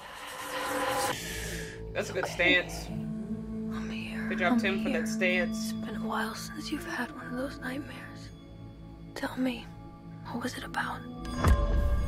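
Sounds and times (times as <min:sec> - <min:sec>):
trailer music: 0:00.0 - 0:12.0.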